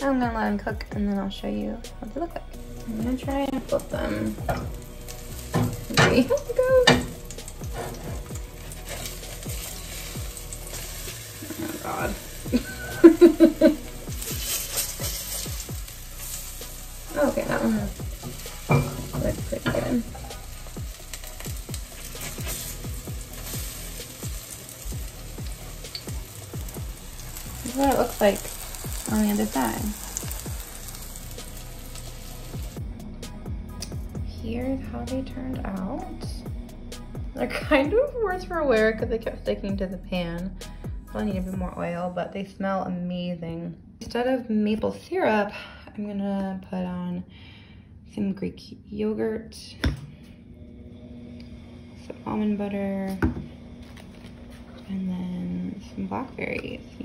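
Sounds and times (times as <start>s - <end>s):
background music: 0.0s - 47.0s
pancakes sizzling in oil: 3.4s - 32.8s.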